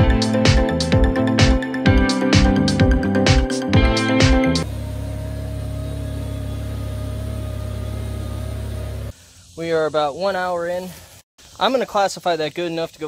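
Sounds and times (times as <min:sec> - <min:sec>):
background music: 0:00.0 - 0:04.7
tractor engine droning: 0:03.8 - 0:09.1
man speaking: 0:09.6 - 0:11.0, 0:11.6 - 0:13.0.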